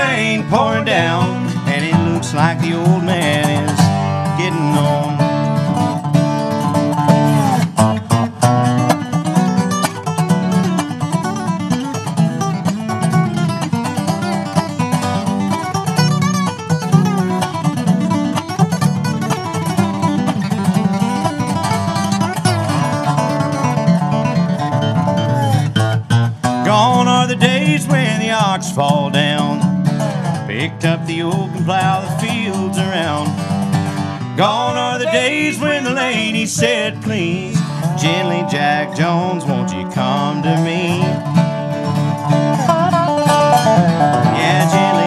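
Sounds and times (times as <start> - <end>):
dobro sliding lead lines: 0.0 - 11.1, 17.2 - 45.0
strummed acoustic guitar: 0.0 - 45.0.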